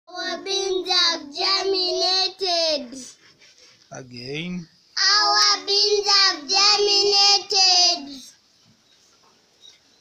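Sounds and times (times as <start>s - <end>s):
young children singing: 0.1s - 2.8s, 5.0s - 8.3s.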